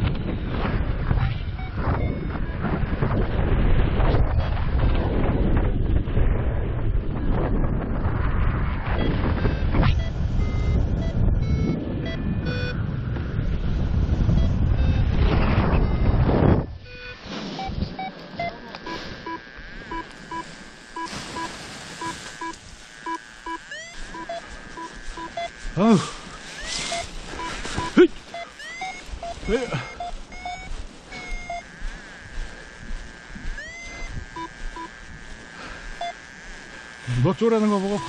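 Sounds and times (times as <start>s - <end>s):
wind buffeting microphone: 0.0s - 17.0s, 29.0s - 37.1s
variometer beeping: 0.1s - 3.2s, 8.8s - 38.0s.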